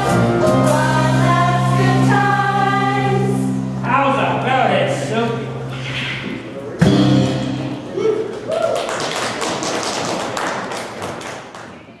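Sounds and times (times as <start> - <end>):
whoops: 7.9 - 9.2
audience applauding: 7.9 - 12.0.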